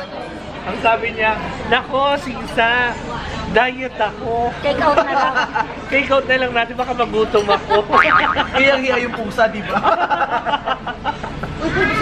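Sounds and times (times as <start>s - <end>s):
people laughing: 4.8s - 5.8s, 7.4s - 12.0s.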